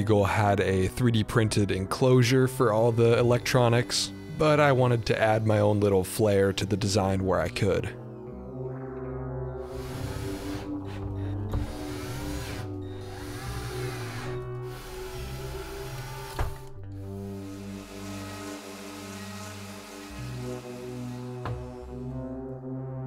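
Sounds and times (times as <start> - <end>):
synthesizer background music: 0.0 - 23.0
cordless drill driving screws: 11.6 - 16.7, 17.3 - 21.7.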